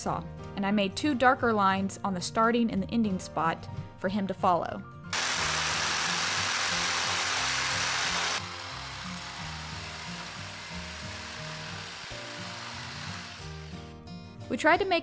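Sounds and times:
background music: 0.0 - 15.0
electric jigsaw cutting wood: 5.2 - 13.8.

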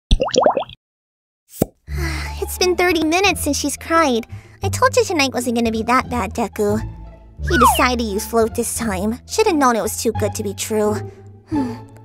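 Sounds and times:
background music: 1.9 - 12.0
cartoon rising pops: 7.4 - 7.9.

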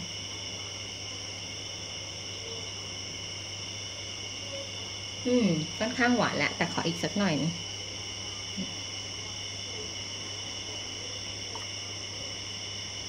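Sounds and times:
insects chorus: 0.0 - 13.0
woman speaking: 5.2 - 7.6.

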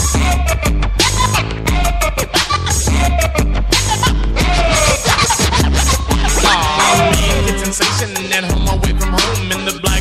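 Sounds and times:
hip hop beat with deep bass: 0.0 - 10.0
turntable scratching: 0.0 - 10.0.

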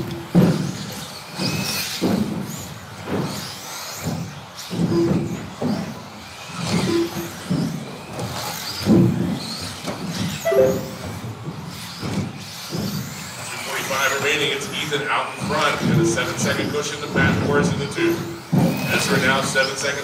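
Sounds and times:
rc car motors whining: 0.0 - 20.0.

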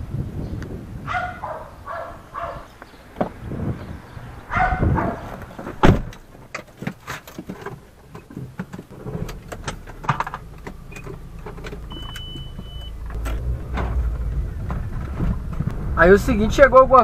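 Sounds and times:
car engine: 1.4 - 17.0
scattered clicks and knocks: 5.7 - 15.8
short high beep: 11.9 - 13.0.

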